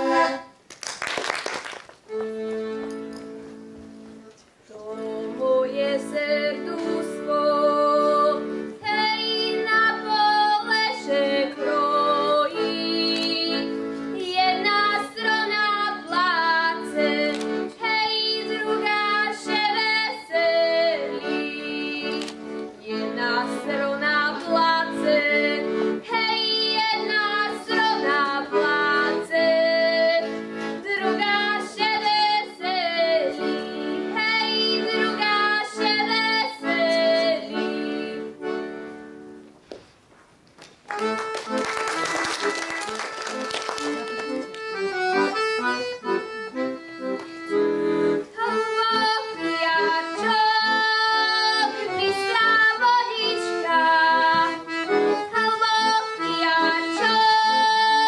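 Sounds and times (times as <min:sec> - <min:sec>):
accordion chords: 0:00.0 - 0:00.7, 0:02.0 - 0:40.1, 0:40.8 - 0:58.0
girl singing folk song: 0:04.7 - 0:38.8, 0:48.0 - 0:58.0.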